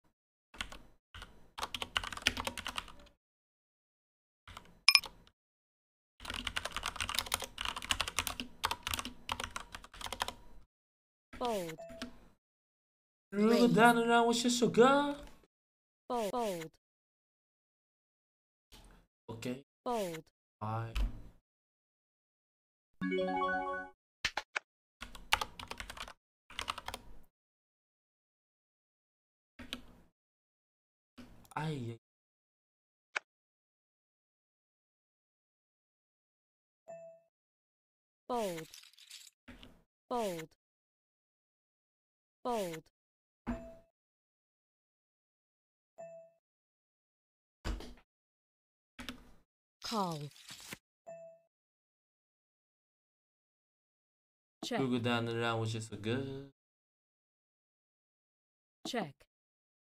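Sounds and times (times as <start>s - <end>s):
computer keyboard typing: 0.6s - 3.2s, 6.2s - 10.4s, 25.0s - 27.0s.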